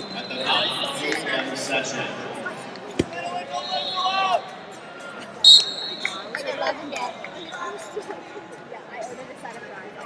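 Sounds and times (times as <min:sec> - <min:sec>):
murmur of arena crowd: 0:00.0 - 0:10.0
referee's whistle blast: 0:03.6 - 0:04.2, 0:05.4 - 0:06.2.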